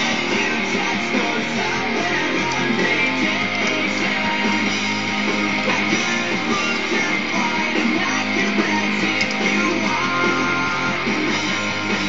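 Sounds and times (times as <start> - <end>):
instrumental pop-rock music: 0.0 - 12.0.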